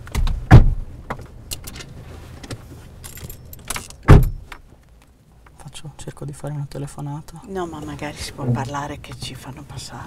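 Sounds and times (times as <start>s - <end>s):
loud thump: 0.1s - 0.9s, 4.1s - 4.5s.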